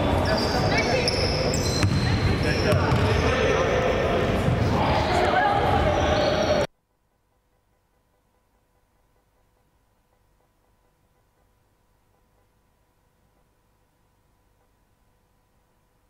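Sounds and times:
echoing voices: 0:00.0 - 0:06.7
basketball bouncing on wooden floor: 0:01.7 - 0:02.1.

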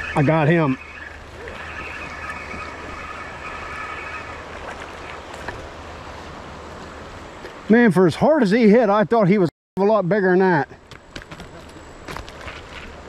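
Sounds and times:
fishing reel whirring: 0:00.0 - 0:05.0
river water rushing: 0:00.0 - 0:07.7.

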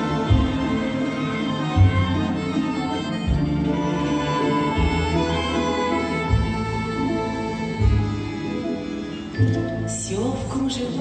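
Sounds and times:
folk instrument orchestra playing: 0:00.0 - 0:11.0.

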